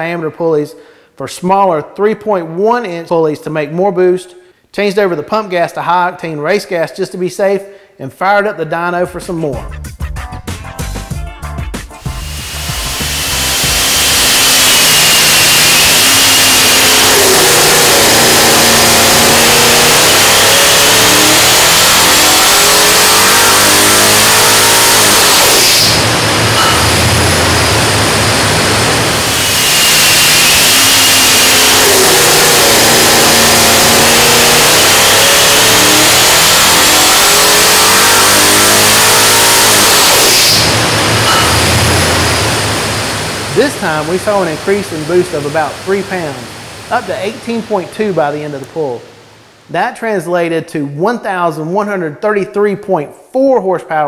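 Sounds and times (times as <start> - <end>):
engine revving on dyno: 12.0 - 48.1
high supercharger whine: 12.0 - 49.7.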